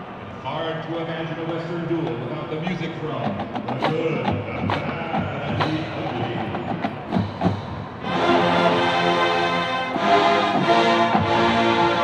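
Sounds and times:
stadium background noise: 0.0s - 12.0s.

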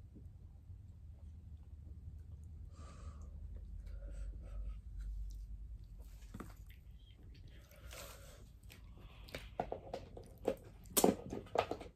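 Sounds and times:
chewing food: 5.0s - 11.0s.

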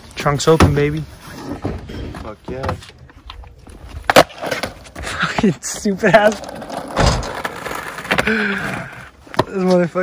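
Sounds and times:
skateboard deck clacking on concrete: 3.8s - 8.3s.

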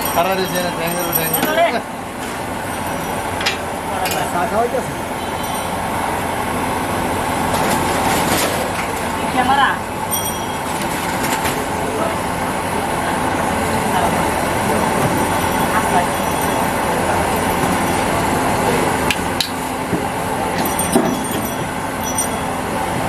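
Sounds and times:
steady rumble: 0.0s - 23.0s
metallic clink: 2.7s - 4.4s.

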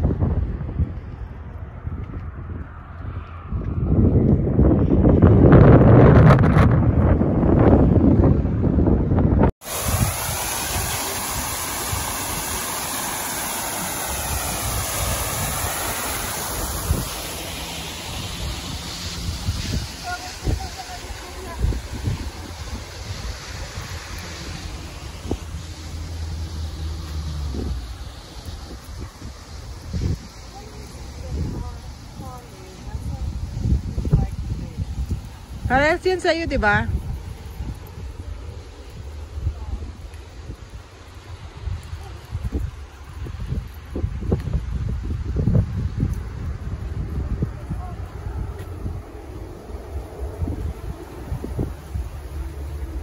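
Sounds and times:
outdoor background: 0.0s - 53.0s
wind buffeting microphone: 0.0s - 53.0s.

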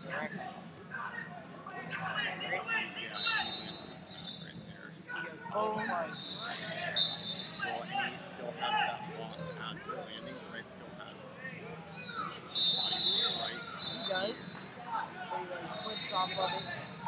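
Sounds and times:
people talking indistinctly: 0.0s - 17.0s.

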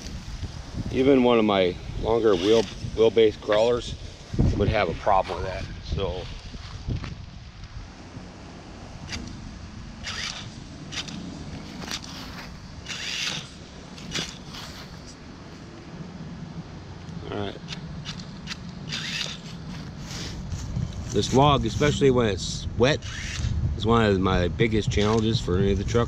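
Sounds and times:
rc car motor whirring: 2.0s - 3.3s, 10.0s - 15.2s, 17.7s - 20.5s, 23.0s - 23.6s
tyres scraping on bark: 2.0s - 6.9s, 10.0s - 15.7s, 17.5s - 22.2s, 23.0s - 23.5s.

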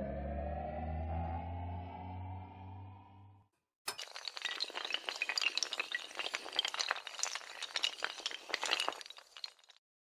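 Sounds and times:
dominoes toppling clatter: 3.9s - 9.8s.

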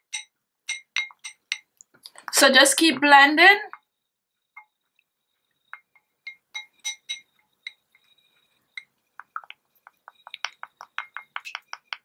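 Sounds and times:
wooden stick clinking on glass bowl: 0.0s - 1.7s, 5.7s - 7.8s.

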